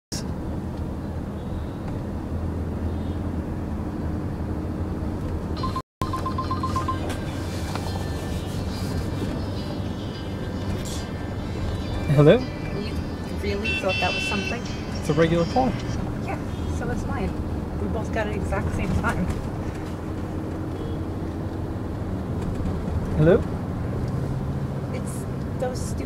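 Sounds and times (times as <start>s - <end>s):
car cabin drone: 0.2s - 24.9s
mobile phone beeps: 5.6s - 7.5s.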